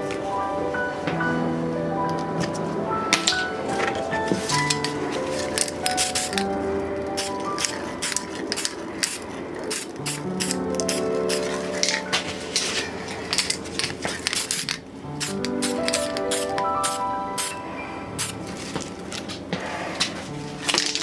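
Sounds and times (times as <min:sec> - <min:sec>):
instrumental background music: 0:00.0 - 0:08.9, 0:09.7 - 0:21.0.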